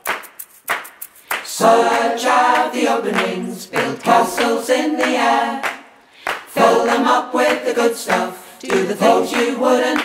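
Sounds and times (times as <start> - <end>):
choir singing: 1.4 - 10.0.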